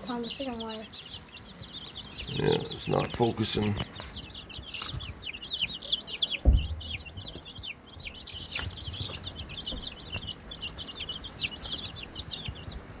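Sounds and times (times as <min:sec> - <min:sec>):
chicks peeping: 0:00.0 - 0:13.0
low thump: 0:06.4 - 0:07.0.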